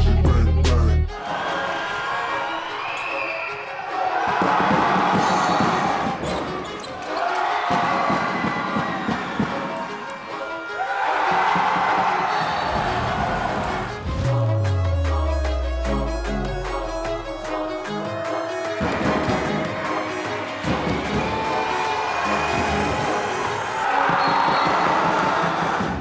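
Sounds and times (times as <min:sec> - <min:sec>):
crowd noise: 0:01.1 - 0:14.3, 0:15.0 - 0:26.0.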